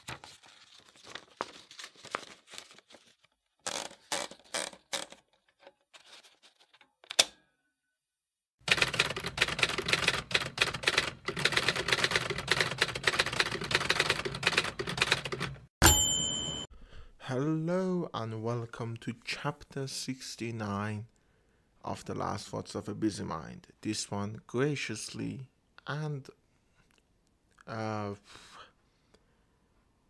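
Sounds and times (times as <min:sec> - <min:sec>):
typewriter keys clacking: 0:08.7 - 0:15.6
typewriter bell ding: 0:15.8 - 0:16.7.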